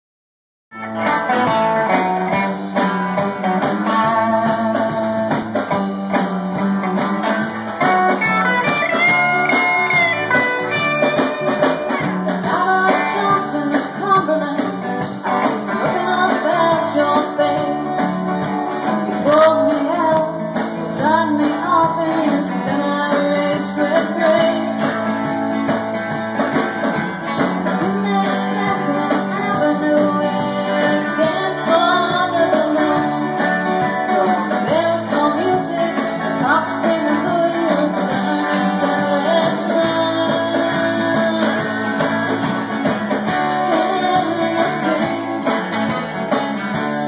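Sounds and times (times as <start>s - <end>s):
live band playing: 0.7s - 47.0s.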